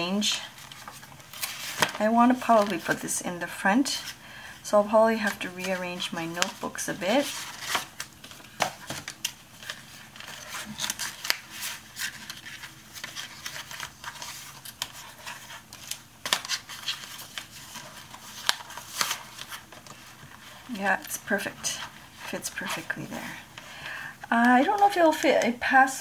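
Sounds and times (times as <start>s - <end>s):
paper rustling and scraping: 0.1s - 4.2s, 5.0s - 23.6s.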